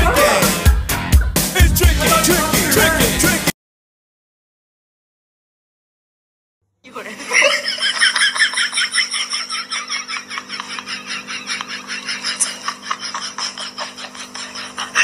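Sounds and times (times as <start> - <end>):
rapid giggling laughter: 7.0 - 15.0.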